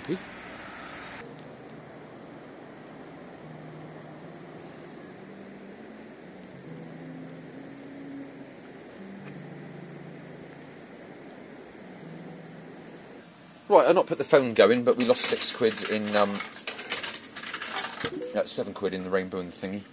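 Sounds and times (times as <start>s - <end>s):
seafront ambient hiss: 0.0s - 16.6s.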